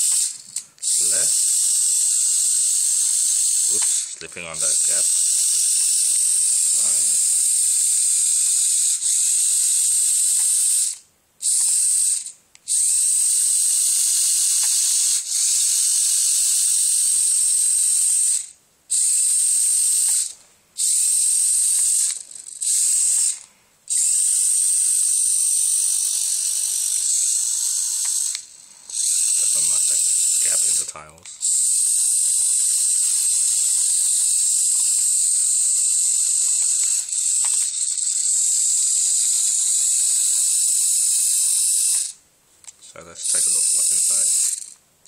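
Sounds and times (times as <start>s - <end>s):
servo motors whirring: 0.0s - 42.2s, 43.1s - 44.8s.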